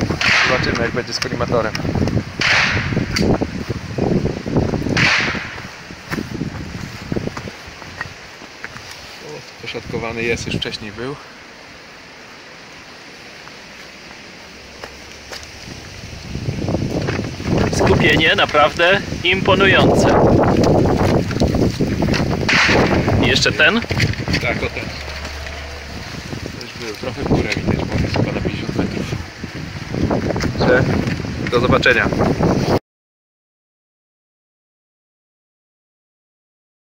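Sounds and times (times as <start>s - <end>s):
wind hiss on microphone: 0.0s - 32.8s
footsteps on gravel: 5.5s - 9.4s, 13.3s - 18.9s, 19.6s - 28.3s.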